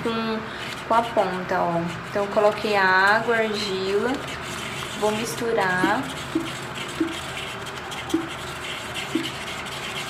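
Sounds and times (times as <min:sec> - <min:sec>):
brush stirring wet clay paste: 0:00.1 - 0:10.0
brush knocking on plastic pot: 0:05.8 - 0:07.2, 0:08.1 - 0:08.4, 0:09.1 - 0:09.4.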